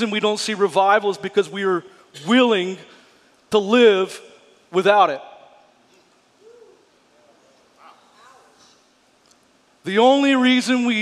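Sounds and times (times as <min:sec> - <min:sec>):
faint hummed murmur: 0:00.0 - 0:11.0
faint voice: 0:06.4 - 0:08.8.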